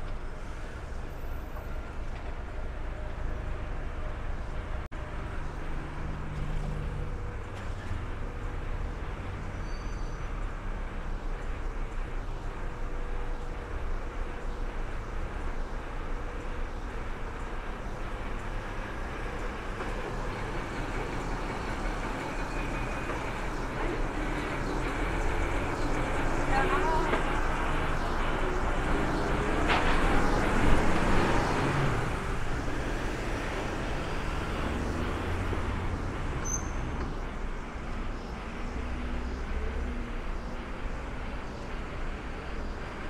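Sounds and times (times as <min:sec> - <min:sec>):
coach diesel engine pulling away: 0:00.0 - 0:43.0
street traffic: 0:00.0 - 0:43.0.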